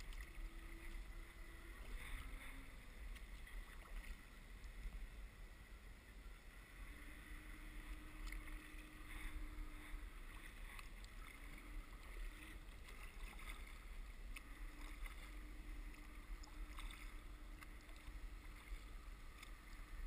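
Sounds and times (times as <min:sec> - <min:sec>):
paddle drips and splashes: 0:00.0 - 0:05.0, 0:07.7 - 0:20.0
faint hum: 0:00.0 - 0:20.0
low steady rumble: 0:00.0 - 0:20.0.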